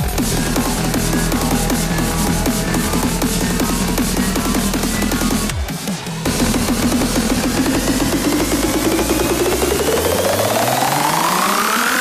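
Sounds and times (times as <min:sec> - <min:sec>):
deep bass: 0:00.0 - 0:11.8
fast repeated synth note: 0:00.0 - 0:12.0.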